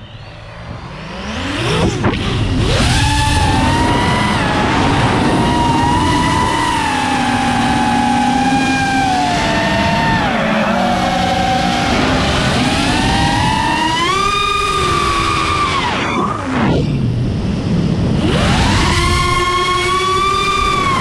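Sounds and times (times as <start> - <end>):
drone propellers whining: 0.0 - 21.0.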